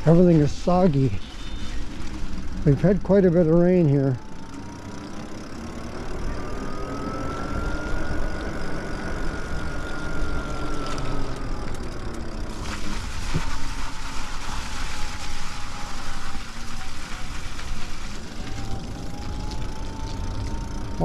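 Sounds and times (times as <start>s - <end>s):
tyre noise on wet path: 0.0s - 6.5s, 7.1s - 21.0s
electric motor whining: 0.0s - 21.0s.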